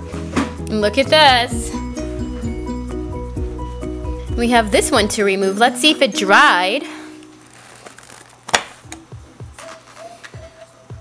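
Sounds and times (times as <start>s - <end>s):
quiet background music: 0.0s - 11.0s
steady hum: 0.7s - 7.7s.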